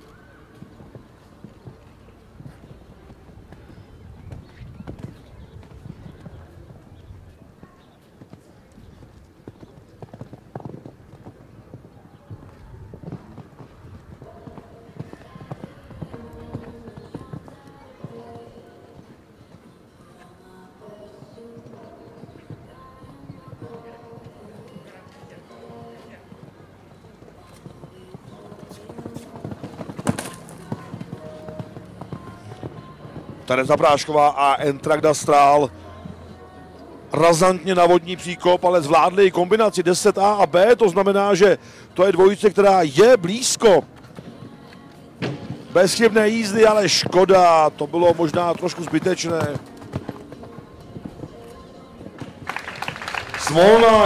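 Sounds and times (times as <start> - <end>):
horse hoofbeats on sand: 0.1 - 36.4, 42.2 - 54.0
sharp hoof knock: 28.4 - 33.4.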